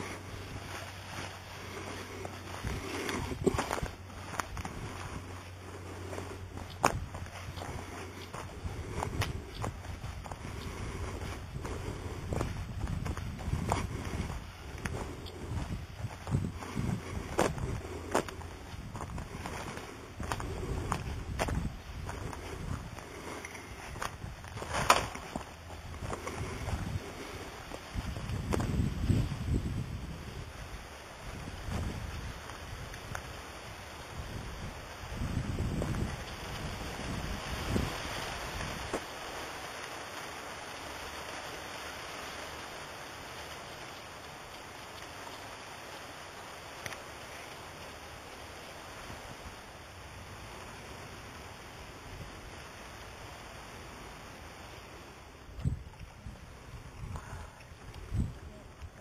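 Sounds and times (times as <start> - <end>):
footsteps on dirt path: 0.0 - 41.4.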